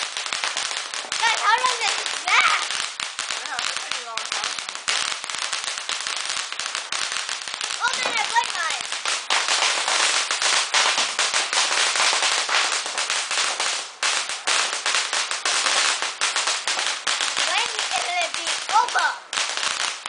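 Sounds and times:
firecrackers cracking: 0.0s - 20.0s
person speaking: 1.2s - 2.7s, 7.8s - 8.8s, 17.4s - 19.2s.

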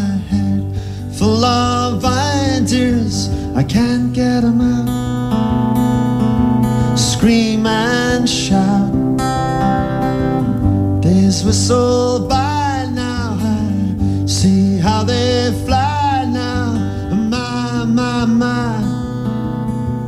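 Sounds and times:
person singing wordless vocal: 0.0s - 5.3s, 6.8s - 9.6s, 11.0s - 19.3s
acoustic guitar: 0.0s - 20.0s.

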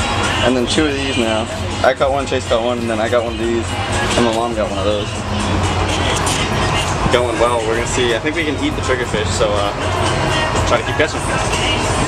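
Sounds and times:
background music: 0.0s - 12.0s
boat engine droning: 0.0s - 12.0s.

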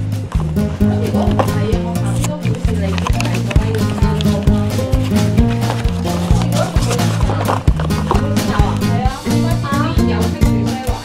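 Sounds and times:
background music with bass and beat: 0.0s - 11.0s.

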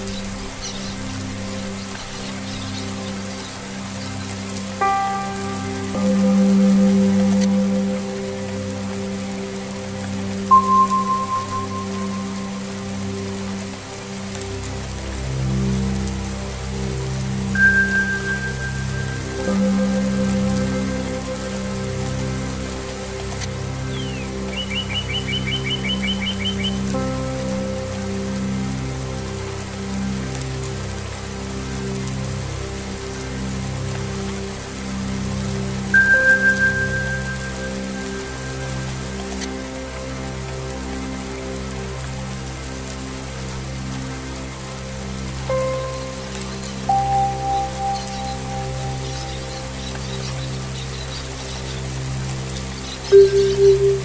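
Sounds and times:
low pulsing drones: 0.0s - 54.0s
steady rain: 0.0s - 54.0s
singing bowl tones: 10.5s - 12.4s, 53.1s - 54.0s
bird trilling: 53.1s - 54.0s.

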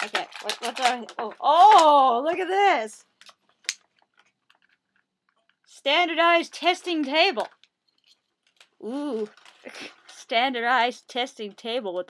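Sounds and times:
plastic toy pieces clicking: 0.0s - 2.1s.

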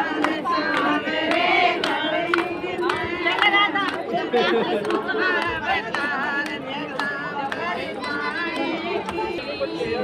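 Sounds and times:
hand claps: 0.0s - 9.4s
women singing together: 0.0s - 10.0s.

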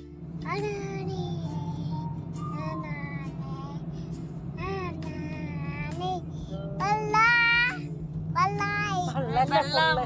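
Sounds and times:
car driving drone: 0.0s - 10.0s.

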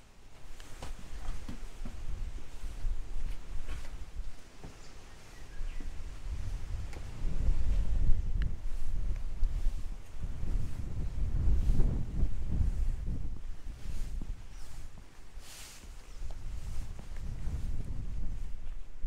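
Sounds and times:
wind buffeting microphone: 0.7s - 19.0s.

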